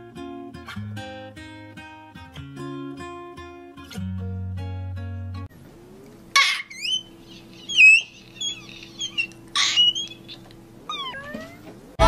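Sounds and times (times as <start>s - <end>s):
low steady hum: 5.1s - 12.0s
quick rising chirps: 5.8s - 11.2s
high gliding meow-like calls: 6.4s - 11.7s.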